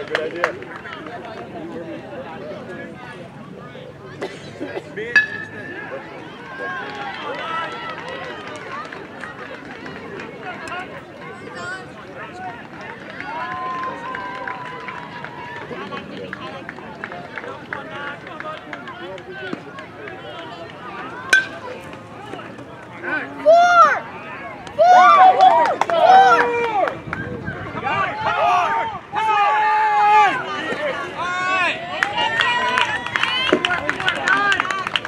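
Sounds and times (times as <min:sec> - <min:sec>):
background talk of people: 0:00.0 - 0:35.0
bat hitting ball: 0:05.1 - 0:05.8, 0:21.3 - 0:22.0.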